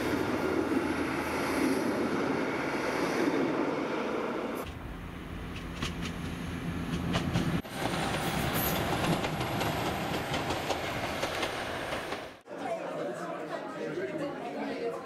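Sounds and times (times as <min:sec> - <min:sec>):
diesel train engine rumble: 0:00.0 - 0:12.4
train wheels clattering on rails: 0:05.5 - 0:12.4
crowd chatter in a room: 0:12.5 - 0:15.0.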